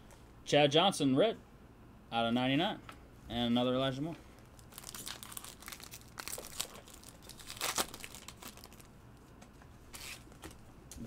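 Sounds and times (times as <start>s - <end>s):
foil wrapper crinkling: 4.4s - 8.9s.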